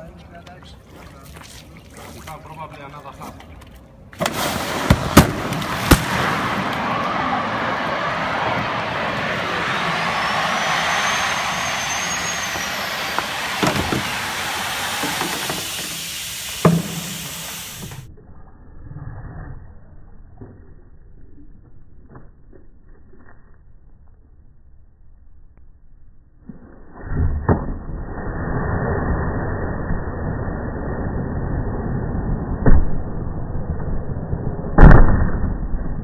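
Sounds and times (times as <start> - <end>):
gas hissing into liferaft: 10.5 - 18.1.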